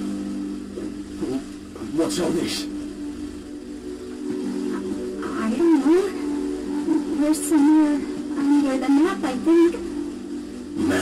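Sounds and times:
low droning hum: 0.0s - 11.0s
wordless voice-like sounds: 10.8s - 11.0s.

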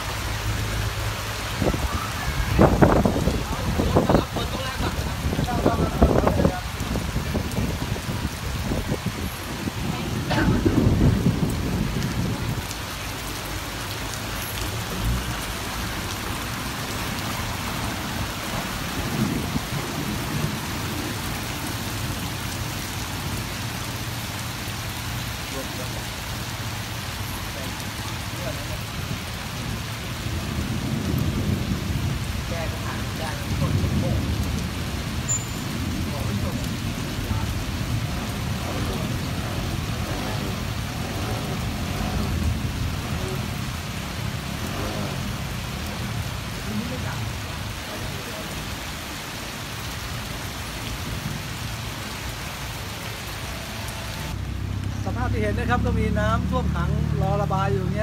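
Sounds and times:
heavy rain on pavement: 0.0s - 58.0s.

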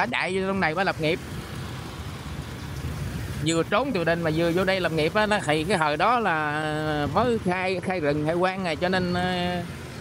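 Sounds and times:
motorbike traffic: 0.0s - 10.0s
road rumble: 0.0s - 10.0s.

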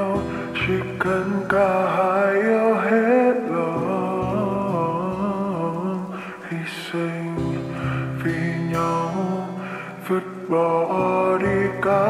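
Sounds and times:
slow reverb-heavy sad ballad: 0.0s - 12.0s.

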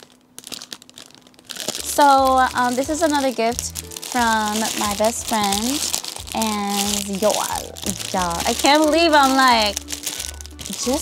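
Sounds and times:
cellophane and tissue paper crinkling: 0.0s - 11.0s.

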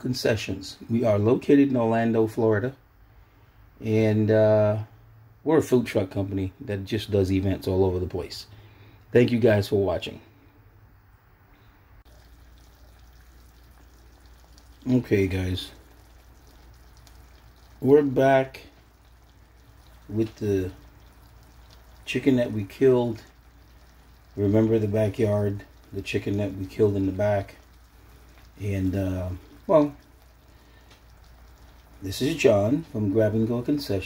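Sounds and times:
chicken sizzling in a pan: 12.1s - 34.0s.

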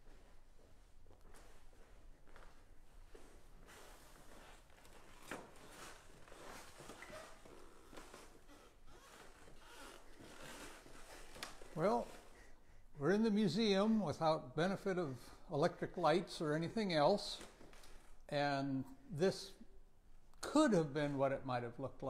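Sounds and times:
clothing rustling: 0.0s - 12.4s.

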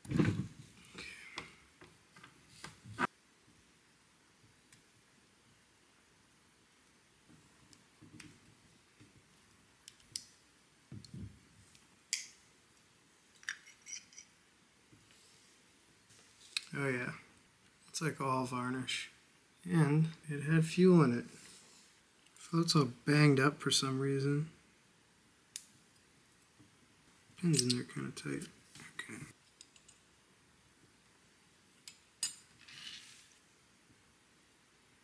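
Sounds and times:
small metal parts clicking: 13.4s - 14.3s.

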